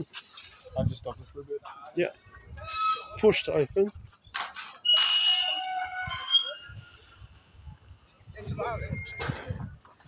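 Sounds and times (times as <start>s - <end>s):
metal gate squealing: 2.6s - 3.2s, 4.4s - 7.1s, 8.5s - 9.6s.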